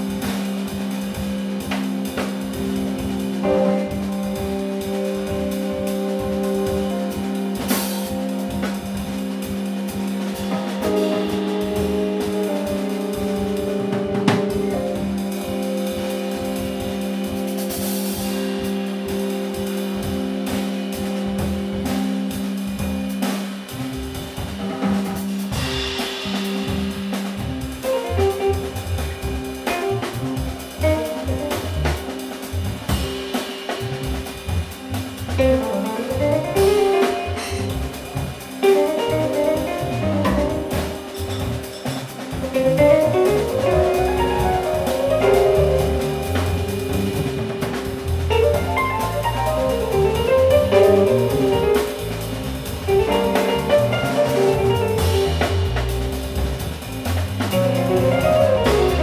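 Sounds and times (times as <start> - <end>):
drum kit with cymbals: 0.0 - 59.0
electric bass: 0.0 - 59.0
keyboard: 0.0 - 59.0.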